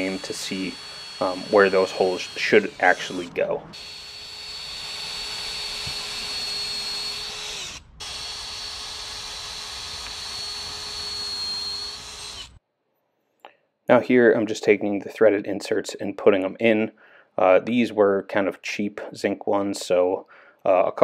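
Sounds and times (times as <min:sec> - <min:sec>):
cordless drill whining through wood: 0:00.0 - 0:12.6.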